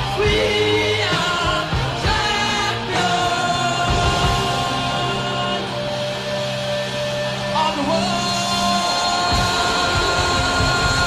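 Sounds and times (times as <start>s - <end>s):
drums and bass: 0.0s - 11.0s
electric guitar: 0.0s - 11.0s.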